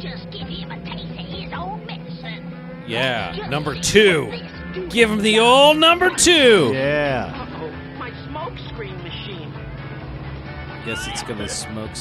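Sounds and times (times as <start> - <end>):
cartoon background music: 2.9 - 7.4, 10.8 - 12.0
man speaking: 2.9 - 7.4, 10.9 - 11.7.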